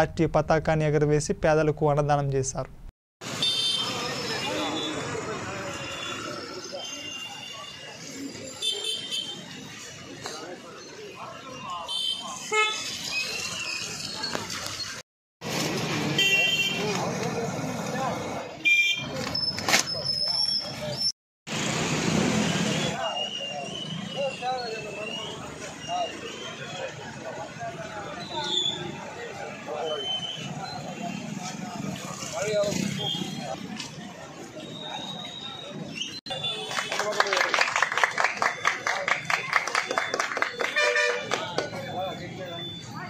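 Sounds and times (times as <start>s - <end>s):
traffic noise: 0.0s - 43.0s
vehicle horns tooting: 3.3s - 7.9s, 8.5s - 9.6s, 11.8s - 13.1s, 16.1s - 17.0s, 18.6s - 19.2s, 32.7s - 33.6s, 36.3s - 37.3s, 40.0s - 41.9s
people talking: 3.8s - 8.8s, 10.1s - 12.5s, 22.8s - 43.0s.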